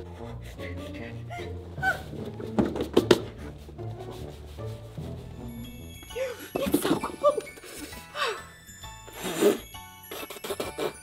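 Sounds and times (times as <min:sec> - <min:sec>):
background music: 0:00.0 - 0:11.0
rustling of fake snow on clothes: 0:03.4 - 0:08.1
person laughing: 0:06.2 - 0:08.4.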